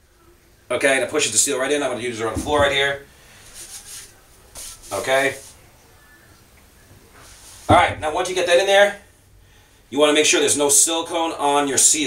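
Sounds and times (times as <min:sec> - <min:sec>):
faint rubbing and scraping: 0:01.9 - 0:05.8, 0:06.8 - 0:09.2.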